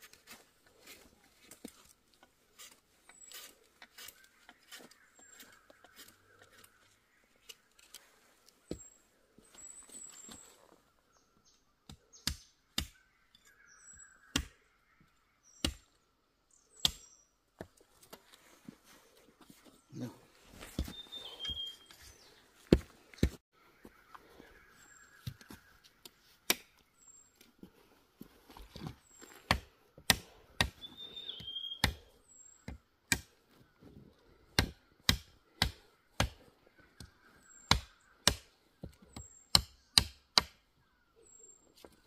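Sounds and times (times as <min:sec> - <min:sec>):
faint bird chirps: 0:19.6 - 0:22.7, 0:30.8 - 0:32.7
footsteps on stone: 0:20.4 - 0:23.4
walking stick striking stones: 0:22.6 - 0:23.4.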